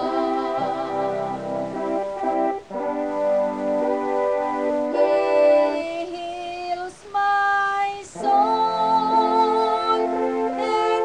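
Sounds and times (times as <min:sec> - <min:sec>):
woman singing gospel song: 0:00.0 - 0:01.4, 0:05.0 - 0:11.0
electronic keyboard chords: 0:00.0 - 0:06.7, 0:08.1 - 0:11.0.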